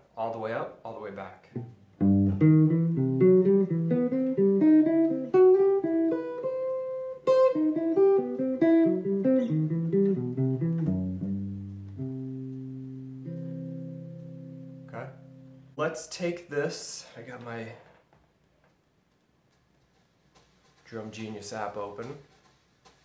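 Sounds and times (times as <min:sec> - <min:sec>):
clean electric guitar: 0:01.6 - 0:15.8.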